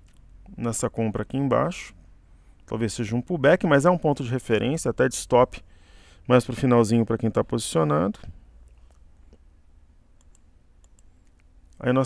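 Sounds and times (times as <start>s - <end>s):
steady low hum: 0.0s - 12.0s
faint computer mouse clicks: 10.2s - 11.5s.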